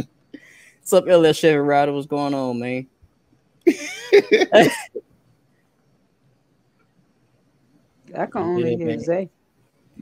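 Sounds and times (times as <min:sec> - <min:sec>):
man laughing: 0:03.7 - 0:05.0.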